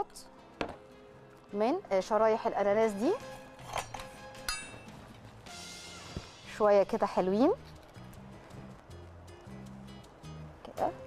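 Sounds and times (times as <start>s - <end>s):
soft background music: 0.0s - 11.0s
dishware clinking: 3.6s - 5.0s.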